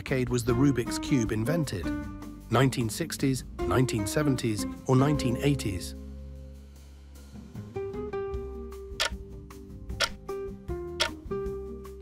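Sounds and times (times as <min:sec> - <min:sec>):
plucked countdown music: 0:08.8 - 0:11.5
sharp ticks: 0:10.0 - 0:10.2, 0:11.0 - 0:11.2.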